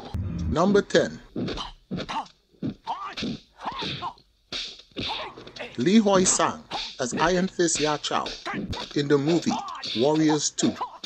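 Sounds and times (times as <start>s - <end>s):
fighters shouting: 9.5s - 10.0s.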